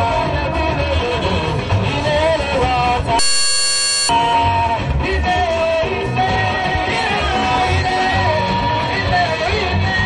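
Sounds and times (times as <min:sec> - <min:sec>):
live band with guitar: 0:00.0 - 0:10.0
steady electronic buzz: 0:03.2 - 0:04.1.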